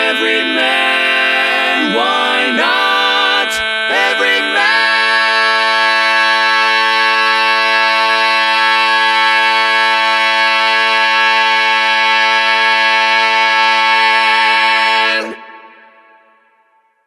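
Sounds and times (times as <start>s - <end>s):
a cappella male vocal chord: 0.0s - 15.9s.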